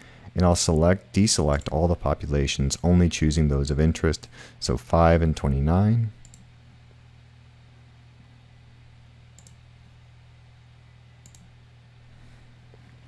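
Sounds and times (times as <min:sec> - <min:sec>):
low electrical hum: 0:00.0 - 0:13.0
computer mouse clicks: 0:06.2 - 0:06.4, 0:09.4 - 0:09.6, 0:11.2 - 0:11.5.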